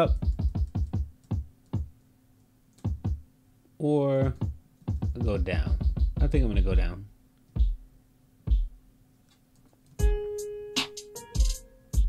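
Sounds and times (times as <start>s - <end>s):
electronic kick drum hits: 0.0s - 1.9s, 4.2s - 6.9s, 7.6s - 7.9s, 8.5s - 8.8s.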